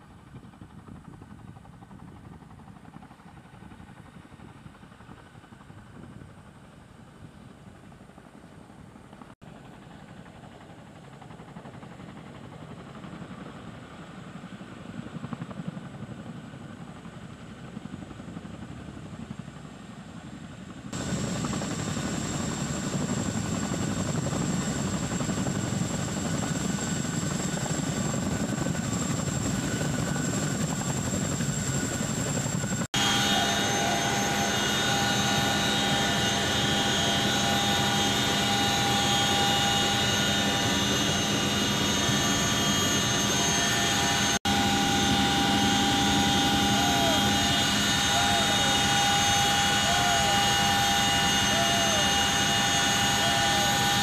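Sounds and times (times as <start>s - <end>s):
helicopter rotor and engine noise: 0.0s - 54.0s.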